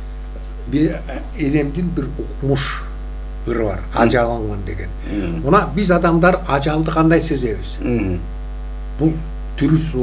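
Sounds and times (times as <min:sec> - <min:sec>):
electrical mains hum: 0:00.0 - 0:10.0
man's voice: 0:03.5 - 0:08.3.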